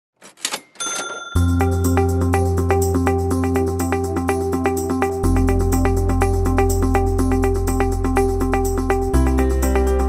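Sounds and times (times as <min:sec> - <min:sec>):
bright ringing ding: 0:00.5 - 0:02.0
music with deep bass: 0:01.4 - 0:10.0.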